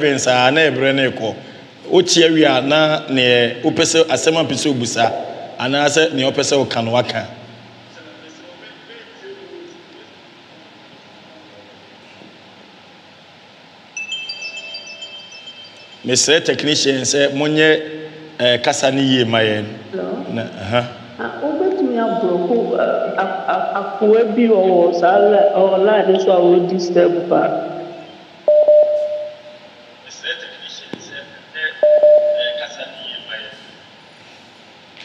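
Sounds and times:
faint room hiss: 0.0s - 35.0s
chimes ringing: 14.0s - 16.9s
steady telephone tone: 27.8s - 29.7s, 31.8s - 33.0s.

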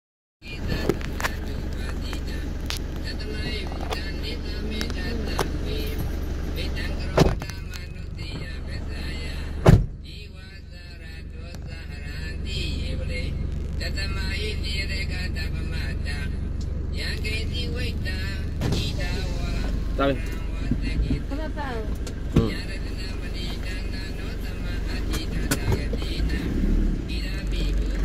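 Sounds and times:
car engine hum from cabin: 0.4s - 28.0s
heavy thumps: 9.6s - 10.0s.

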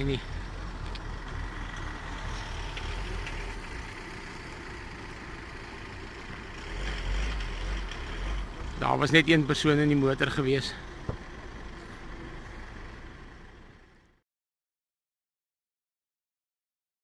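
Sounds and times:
vehicle engine idling: 0.0s - 14.2s.

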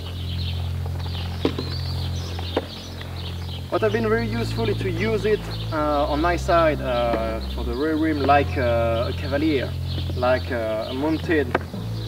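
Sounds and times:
bird chirps: 0.0s - 12.0s
low drone: 0.0s - 12.0s.

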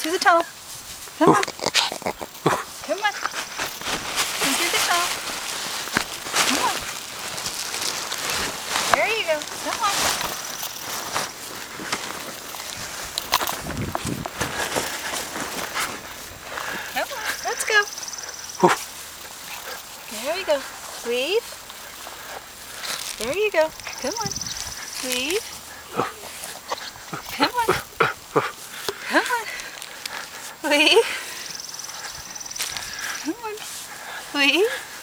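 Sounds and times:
rustling on grass: 0.0s - 35.0s
dog footfalls on grass: 2.0s - 35.0s.

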